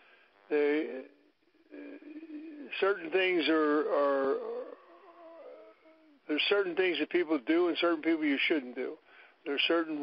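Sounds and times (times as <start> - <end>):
man humming hesitation: 0.4 - 6.3
man speaking: 0.5 - 5.6, 6.2 - 10.0.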